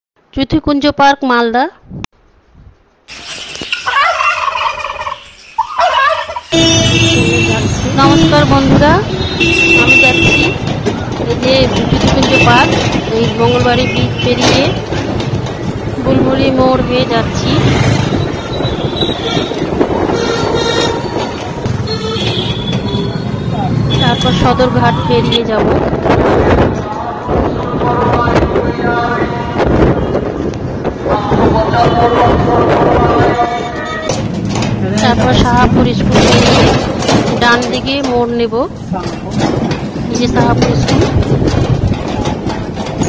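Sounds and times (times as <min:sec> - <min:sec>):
street traffic noise: 0:00.2 - 0:43.0
turkeys gobbling: 0:03.1 - 0:06.6.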